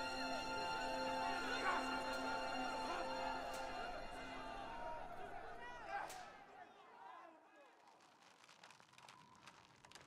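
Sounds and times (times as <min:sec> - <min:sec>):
faint clicks and crackles: 0:07.8 - 0:10.0.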